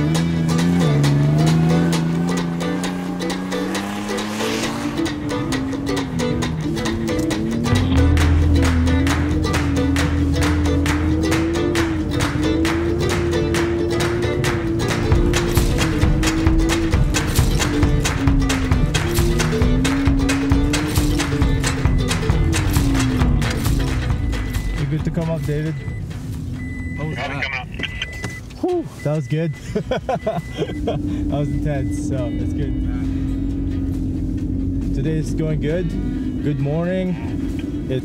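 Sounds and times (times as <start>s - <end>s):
fast plucked rhythm: 0.0s - 26.1s
smooth gliding melody: 0.0s - 27.2s, 30.8s - 38.0s.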